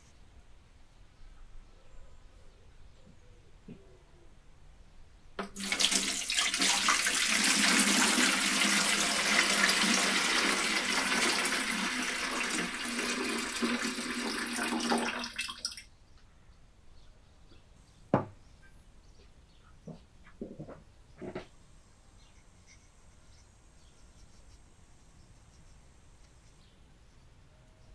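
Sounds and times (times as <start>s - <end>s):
water pouring into a can: 5.4s - 15.8s.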